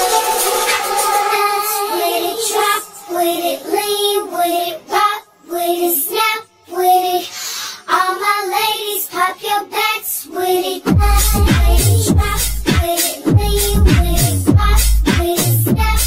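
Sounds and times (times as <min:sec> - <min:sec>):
sparse electronic backing: 0:10.9 - 0:15.1
pitched-up female vocal: 0:10.9 - 0:16.0.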